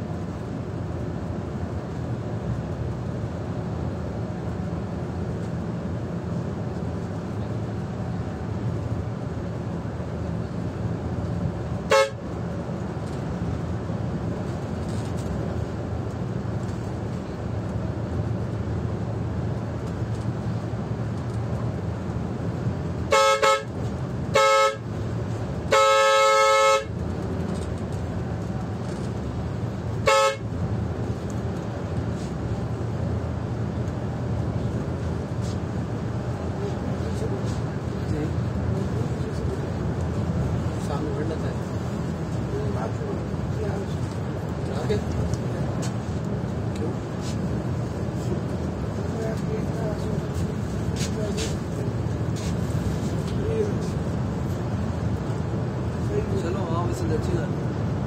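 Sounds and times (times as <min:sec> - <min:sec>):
bus engine and tyres hum: 0:00.0 - 0:58.0
bus horn toots: 0:11.8 - 0:12.4, 0:23.1 - 0:25.0, 0:25.7 - 0:27.1, 0:30.0 - 0:30.6.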